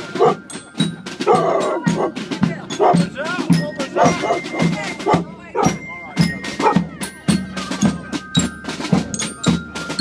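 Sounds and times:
marching snare and bass drums: 0.0 - 10.0.

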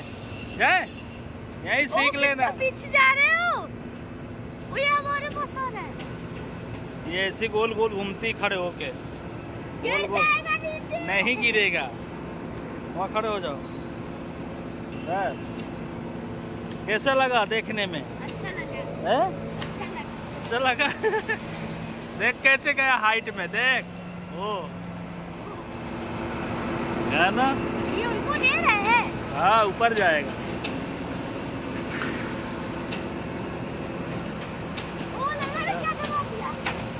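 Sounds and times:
crane engine humming: 0.0 - 36.9.

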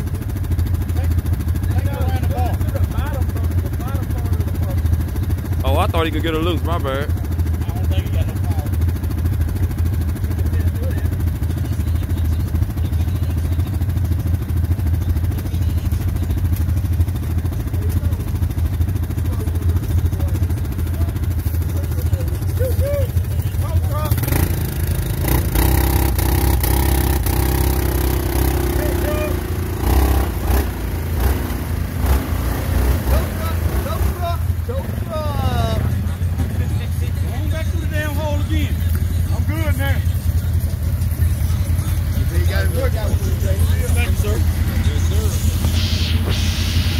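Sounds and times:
atv engines revving in mud: 0.0 - 46.9.

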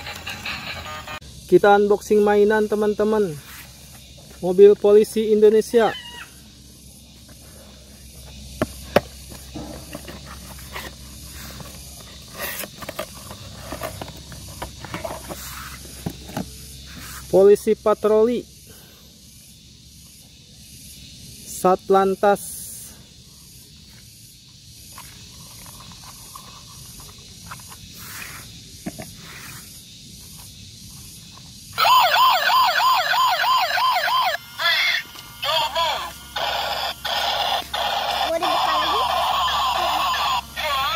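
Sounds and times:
faint hiss: 27.9 - 30.4
toy electronic siren wailing: 31.8 - 40.9.

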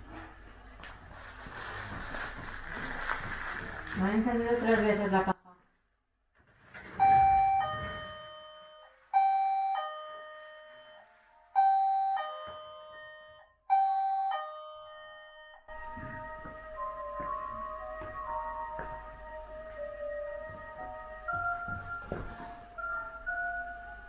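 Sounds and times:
electronic two-note ding-dong chime: 7.0 - 15.7
bell-like tune: 7.0 - 15.8.

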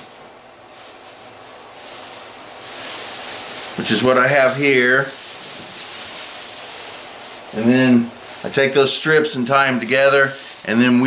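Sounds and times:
plastic bag strips rustling: 0.0 - 11.0.

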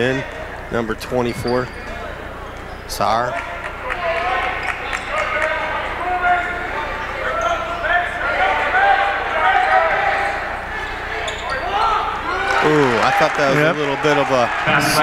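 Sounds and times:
crowd voices: 0.0 - 15.0
sneakers squeaking on court: 1.1 - 2.9, 6.9 - 7.9, 11.2 - 11.8.

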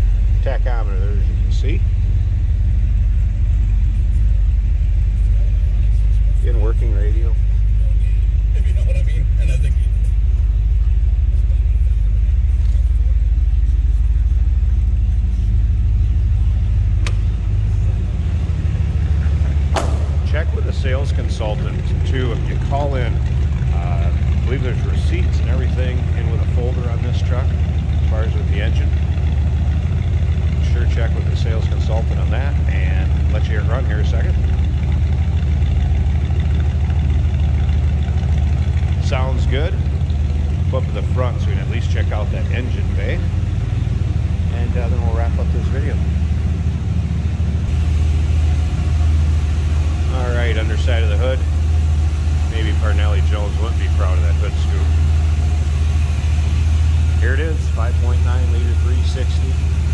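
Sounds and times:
pickup truck engine idling: 0.0 - 59.9.

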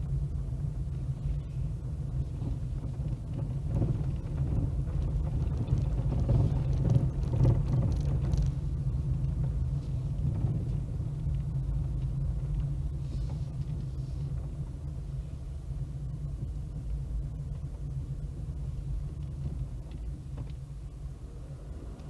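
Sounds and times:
car engine and tyres rumbling: 0.0 - 22.0.

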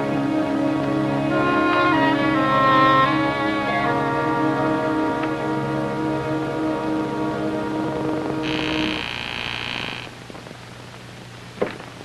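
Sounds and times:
electric door buzzer: 8.4 - 10.2.

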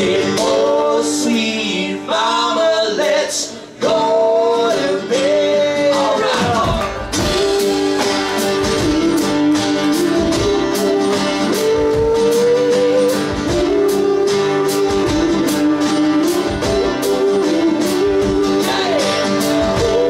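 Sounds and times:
strummed acoustic guitars: 0.0 - 20.0
drum kit steady beat: 6.2 - 20.0
sliding melody line: 7.1 - 20.0.

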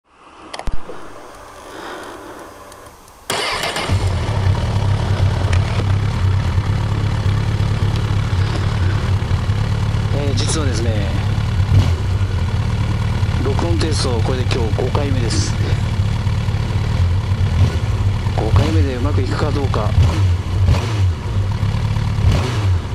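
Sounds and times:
motorcycle engine starting and idling: 3.2 - 22.9.

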